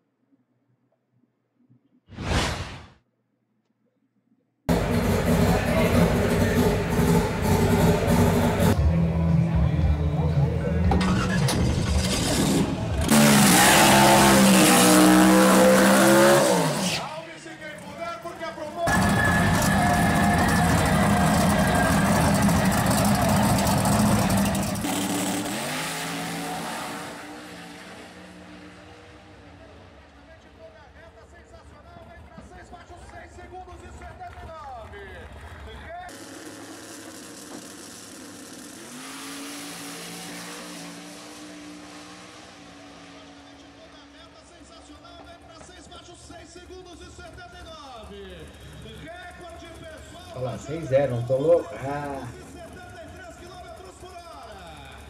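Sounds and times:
drag car engine revving: 4.7s - 8.8s, 10.6s - 17.2s, 18.0s - 30.2s, 36.1s - 45.2s
engine with rising and falling pitch: 4.7s - 17.1s, 18.9s - 30.0s, 36.1s - 44.5s.

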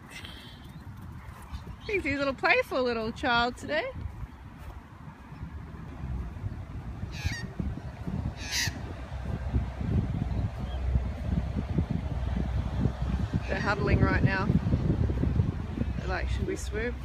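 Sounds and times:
wind rumble on microphone: 0.0s - 17.0s
magpie calls: 7.1s - 7.5s, 8.4s - 8.8s.

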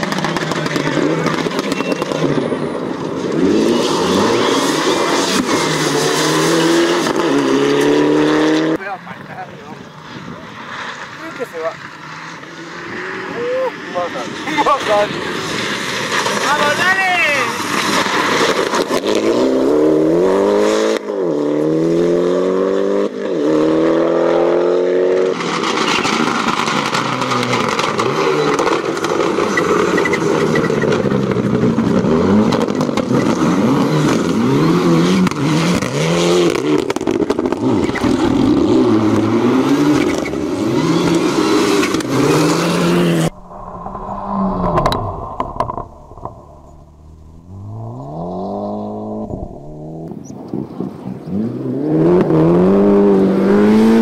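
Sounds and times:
car engine rising and falling: 0.0s - 54.0s
distant car engine: 0.0s - 54.0s
rally car engine revving: 0.0s - 54.0s
gravel noise: 8.8s - 20.6s, 25.2s - 51.5s.

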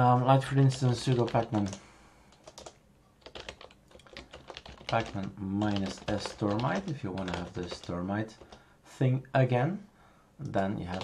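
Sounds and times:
computer keyboard keystrokes: 0.7s - 8.6s.

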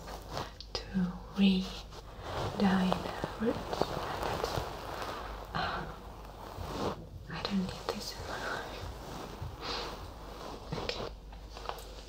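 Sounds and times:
soft whispered speech: 0.0s - 12.0s.

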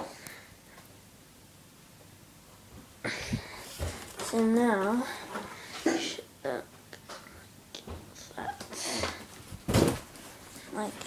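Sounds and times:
cardboard box rustling thump: 9.6s - 10.2s.

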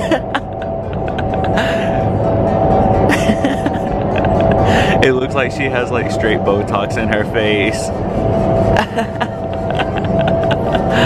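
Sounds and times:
wind tunnel roaring: 0.0s - 11.0s.

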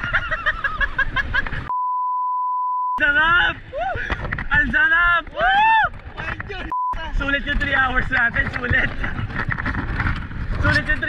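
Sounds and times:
censor bleep: 1.7s - 3.0s, 6.7s - 7.0s
people shouting: 5.4s - 5.9s.

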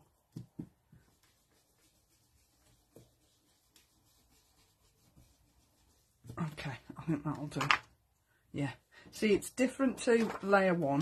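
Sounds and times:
soft brush dabs on stencil: 0.0s - 7.0s.

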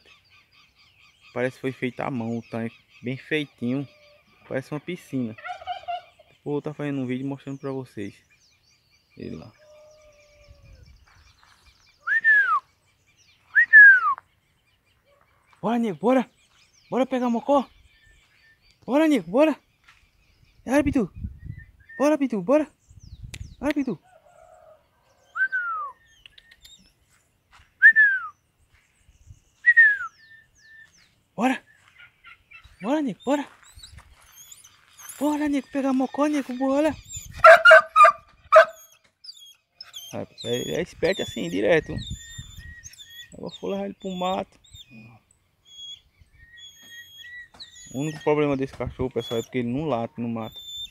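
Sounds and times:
person whistling loudly: 12.1s - 12.6s, 13.5s - 14.2s, 27.8s - 28.3s, 29.7s - 30.1s
dog barking: 37.4s - 38.8s.

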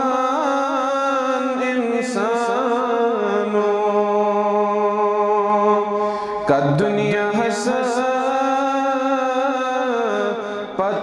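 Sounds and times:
man singing in chanting style: 0.0s - 11.0s.

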